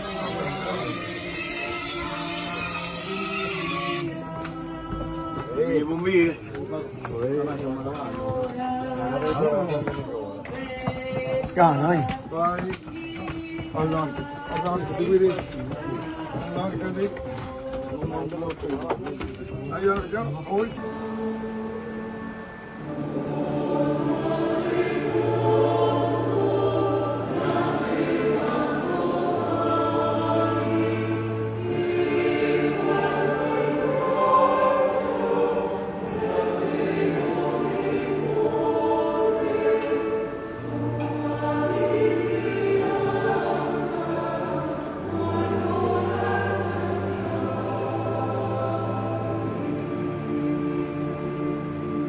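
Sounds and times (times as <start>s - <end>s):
voices singing a hymn: 0.0s - 52.0s
low held accompaniment notes: 11.1s - 52.0s.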